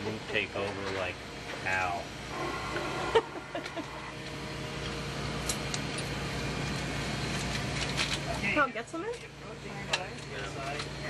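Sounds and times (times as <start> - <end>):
ventilation hum: 0.0 - 11.0.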